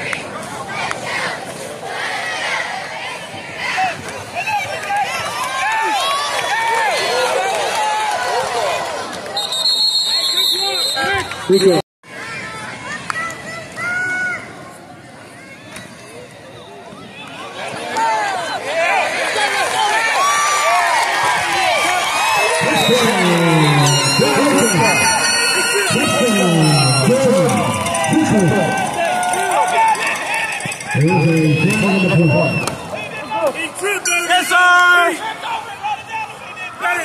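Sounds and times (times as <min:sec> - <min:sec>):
crowd shouting and cheering: 0:00.0 - 0:37.0.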